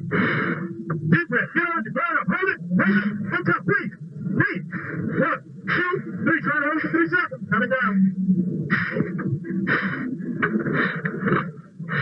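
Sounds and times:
man's strained voice over intercom: 1.1 - 8.1.

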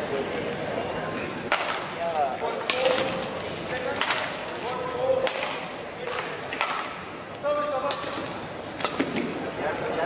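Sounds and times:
racket striking shuttlecock: 1.5 - 2.0, 5.2 - 7.0, 7.8 - 9.3.

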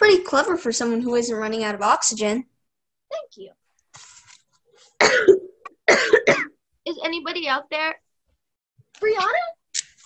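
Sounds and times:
girl coughing: 5.0 - 6.6.

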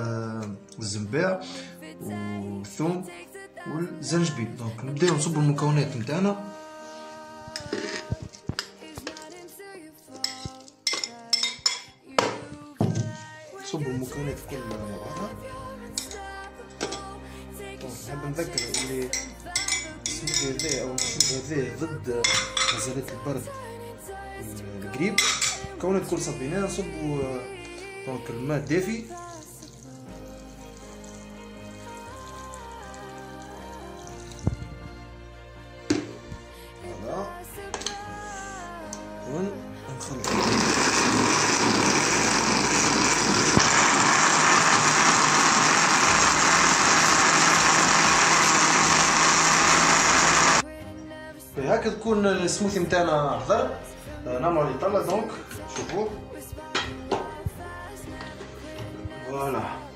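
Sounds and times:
slow background music: 0.0 - 59.9
metal spoon scraping glass bowl: 22.2 - 22.9, 25.2 - 25.6.

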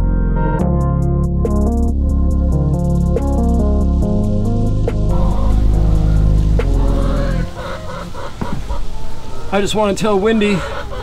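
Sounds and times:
background music: 0.0 - 11.0
chickens clucking: 5.1 - 11.0.

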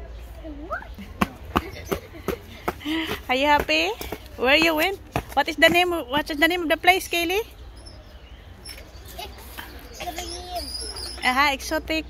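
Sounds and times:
child's running footsteps on pavement: 1.2 - 6.9.

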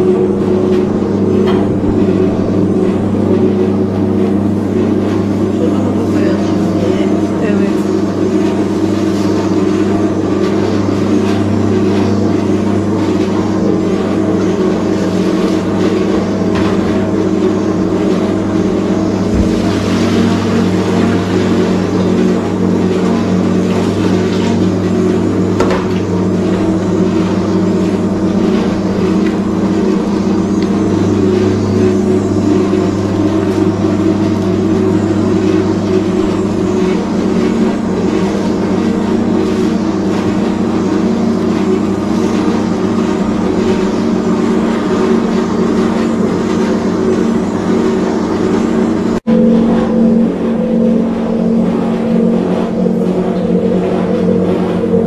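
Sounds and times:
dough mixer motor humming: 0.0 - 55.0.

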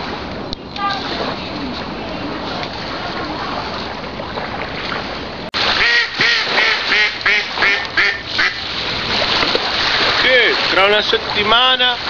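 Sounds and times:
ducks quacking: 5.8 - 8.7.

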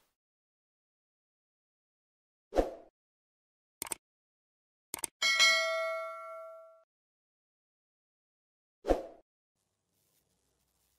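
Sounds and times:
bright bell ding: 5.2 - 6.8.

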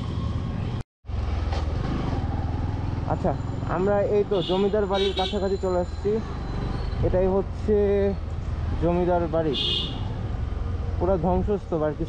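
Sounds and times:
road and wind noise: 0.0 - 12.0.

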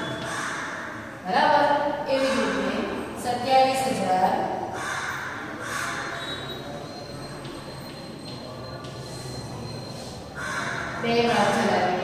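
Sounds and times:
classroom background noise: 0.0 - 12.0.

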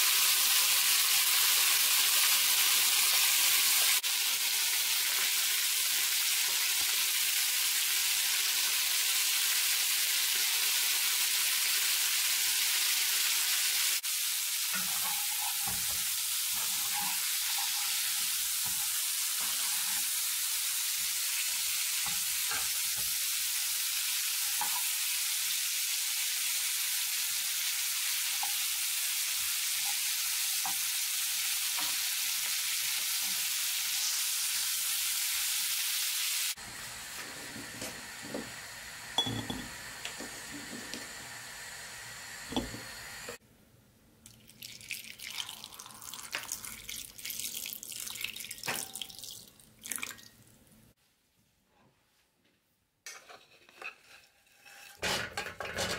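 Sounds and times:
ribs sizzling in a pan: 0.0 - 37.3.

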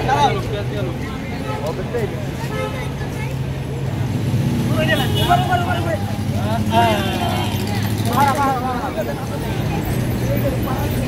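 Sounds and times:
street traffic drone: 0.0 - 11.0
men calling out: 4.7 - 9.5.

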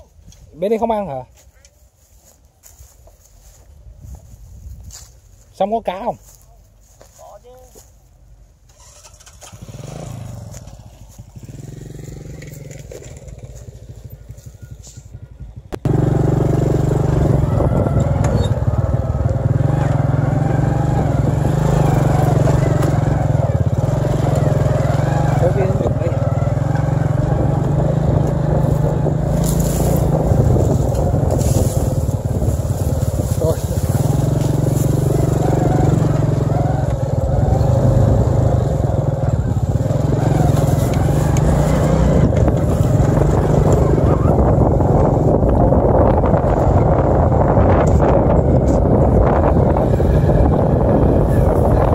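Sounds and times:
small motorbike engine: 8.7 - 51.9.

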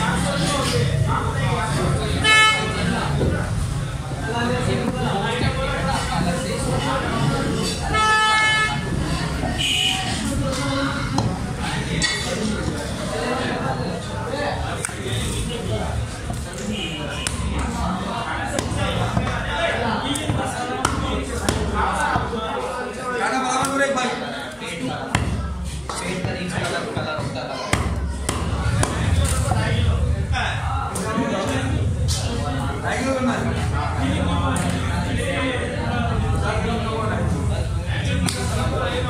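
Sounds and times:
high-pitched horn toot: 2.2 - 2.9, 7.9 - 9.0.

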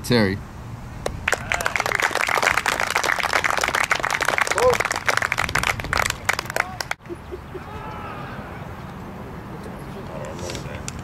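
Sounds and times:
audience applauding: 1.3 - 7.0.

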